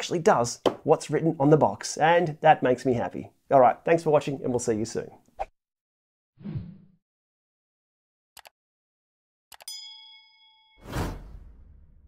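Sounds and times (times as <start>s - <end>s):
bright bell ding: 9.7s - 10.8s.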